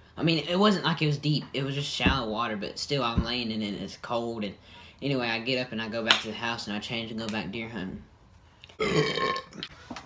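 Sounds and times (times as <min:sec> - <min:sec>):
loud burp: 0:08.8 - 0:09.7.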